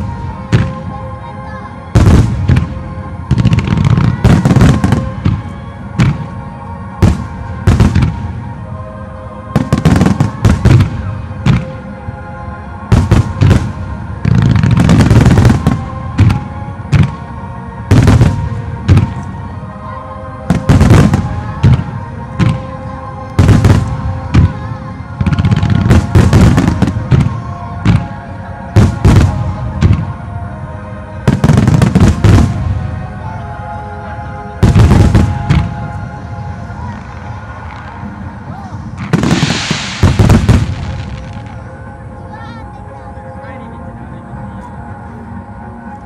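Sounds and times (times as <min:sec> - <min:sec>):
music playing: 0:00.0 - 0:46.0
fireworks bursting: 0:01.9 - 0:06.4, 0:07.0 - 0:08.4, 0:09.5 - 0:11.8, 0:12.9 - 0:17.3, 0:17.9 - 0:19.2, 0:20.5 - 0:30.2, 0:31.2 - 0:32.9, 0:34.6 - 0:41.7.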